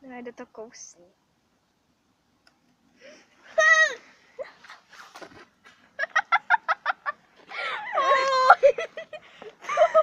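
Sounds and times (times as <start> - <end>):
girl laughing: 6.0 - 10.0.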